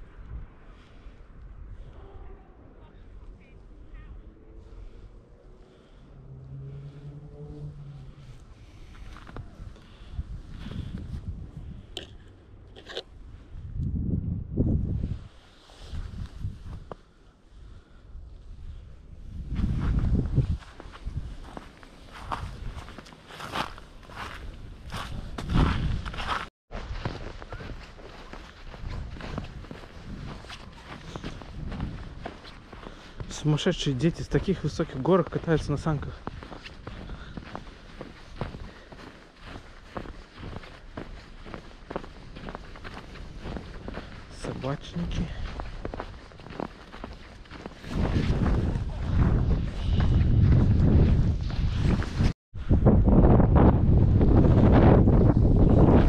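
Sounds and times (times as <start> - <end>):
low rumbles: 0.0 - 15.0
footsteps crunching on snow: 7.9 - 11.3, 19.4 - 52.4.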